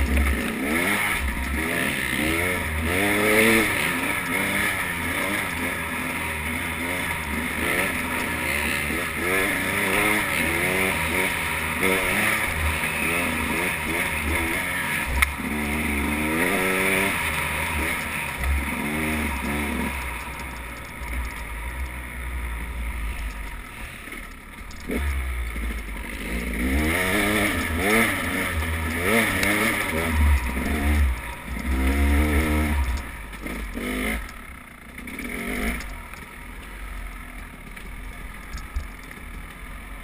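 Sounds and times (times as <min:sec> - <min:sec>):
dirt bike engine revving: 0:00.0 - 0:40.0.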